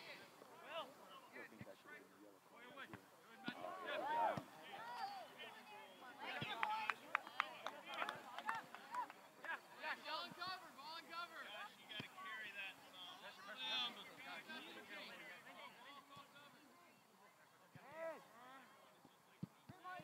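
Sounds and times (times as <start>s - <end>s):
distant players shouting: 3.4s - 5.4s.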